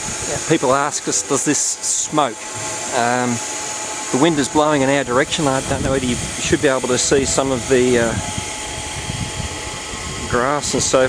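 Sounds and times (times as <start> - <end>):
air compressor humming: 0.0 - 11.0
faint steady whine: 0.0 - 11.0.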